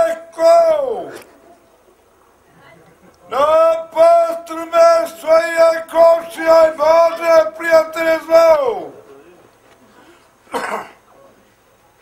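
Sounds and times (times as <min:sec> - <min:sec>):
man coughing: 0:10.5 - 0:11.0.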